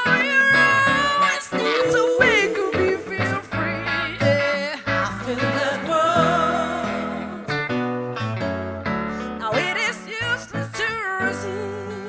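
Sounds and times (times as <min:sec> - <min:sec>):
women singing: 0:00.0 - 0:07.6, 0:09.4 - 0:12.0
ukulele: 0:00.0 - 0:08.9
keyboard: 0:00.0 - 0:12.0.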